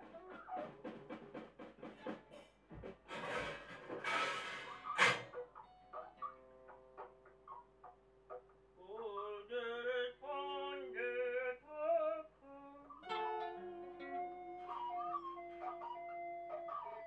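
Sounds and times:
plucked notes: 13.0 - 17.0.

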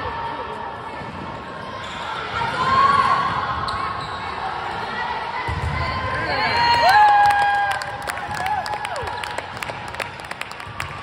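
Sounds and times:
hand clapping in a gym: 6.8 - 11.0.

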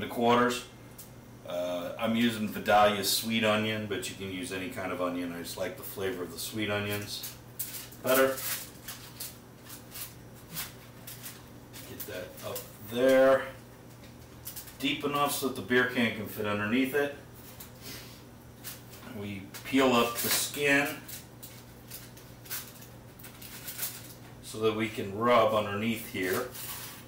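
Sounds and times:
soft rustling handling noises: 4.8 - 27.0
foil crinkling: 6.7 - 15.4, 18.6 - 24.3, 25.9 - 27.0.

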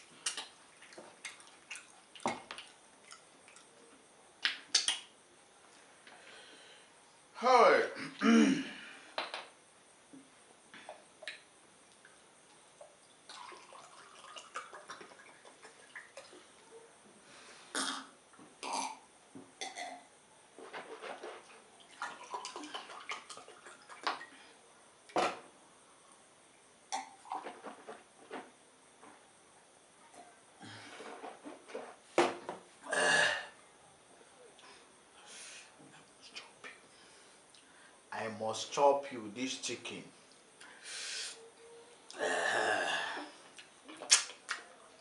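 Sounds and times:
mouth clicks and smacks: 4.4 - 5.1, 43.6 - 44.7.

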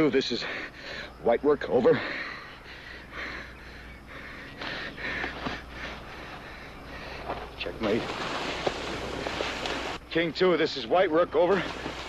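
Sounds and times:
man laboured breathing: 1.9 - 7.6.

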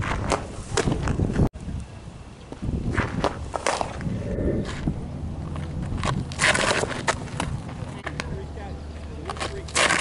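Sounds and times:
wind rumble on microphone: 0.0 - 8.5.

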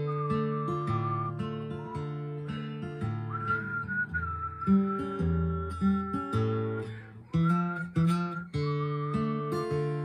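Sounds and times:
acoustic guitar playing: 0.0 - 10.0
person whistling a long note: 0.0 - 10.0.

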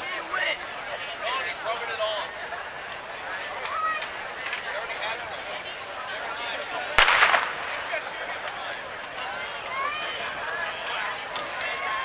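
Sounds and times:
crowd noise: 0.0 - 12.0
spectators talking and calling out: 0.0 - 12.0
starter's pistol shot: 7.0 - 8.0.

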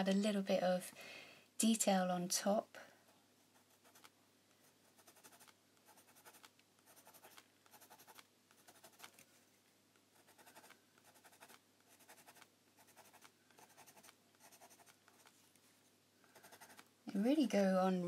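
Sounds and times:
pencil scratching on paper: 3.5 - 9.2, 10.1 - 15.3, 16.3 - 16.9.

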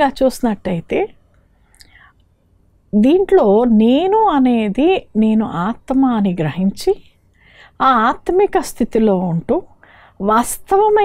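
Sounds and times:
woman speaking: 0.0 - 1.1, 3.0 - 7.1, 7.8 - 11.0
faint breath: 7.3 - 7.8, 9.7 - 10.2.

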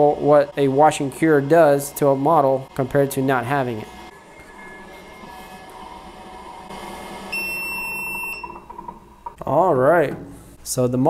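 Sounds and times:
fans and motor humming: 0.0 - 10.9
high electronic beep: 7.3 - 8.7.

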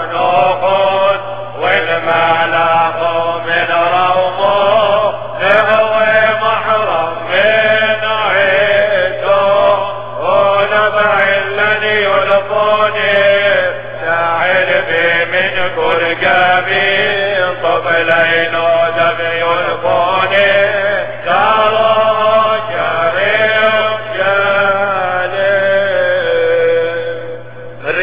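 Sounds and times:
man singing liturgical chant: 0.0 - 28.0.

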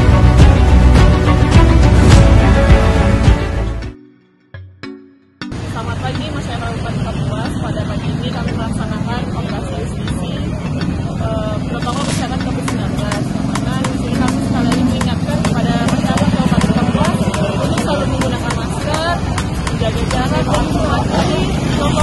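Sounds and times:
motor vehicle engines rumbling: 5.5 - 22.0
voices talking: 5.5 - 22.0.

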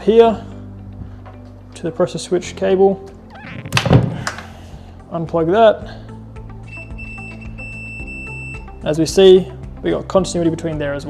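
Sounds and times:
multimeter continuity beep: 6.7 - 8.7.

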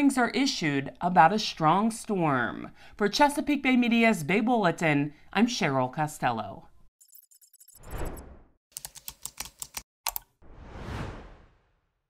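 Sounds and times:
short whoosh: 10.4 - 11.8.

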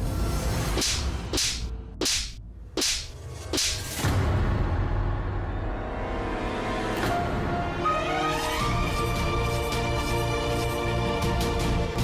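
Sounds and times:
whip-crack swish: 0.8 - 4.0.

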